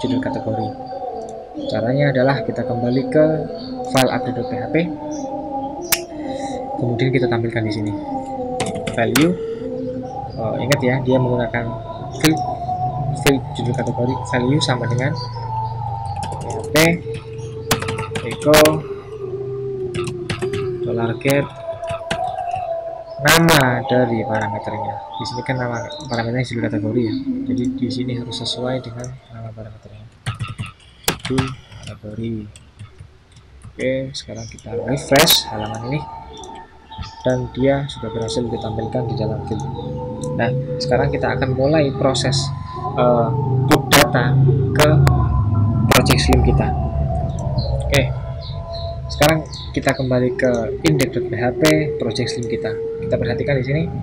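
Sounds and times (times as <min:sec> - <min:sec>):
steady drawn-out tone: 0:00.0 - 0:54.0
steady low hum: 0:00.0 - 0:54.0
keyboard keystrokes: 0:16.2 - 0:18.5.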